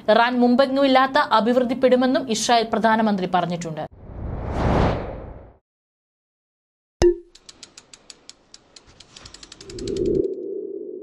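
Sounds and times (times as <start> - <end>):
quick clicks speeding up: 7.3 - 10.4.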